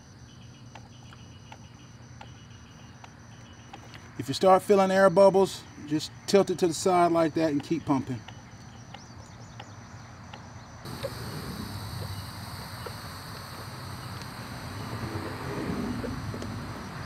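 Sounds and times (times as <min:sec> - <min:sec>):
hand pump faint ticks: 0:06.8 - 0:09.8.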